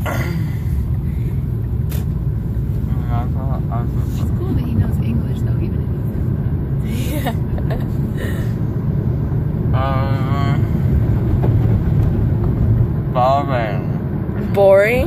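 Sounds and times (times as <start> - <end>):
road and engine rumble in car: 0.0 - 15.0.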